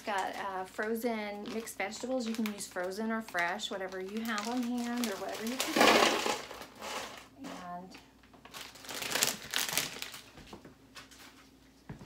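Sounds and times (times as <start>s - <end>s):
plastic bag crinkling: 0.0s - 7.2s, 8.4s - 11.4s.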